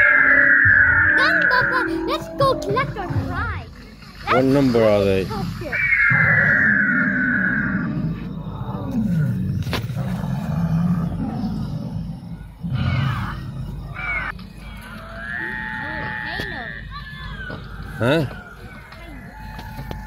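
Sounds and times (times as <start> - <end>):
deep roar: 0.0 - 16.9.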